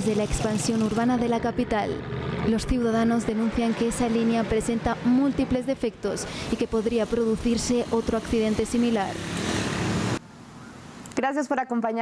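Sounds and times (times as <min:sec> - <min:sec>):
traffic rumble: 0:00.0 - 0:11.5.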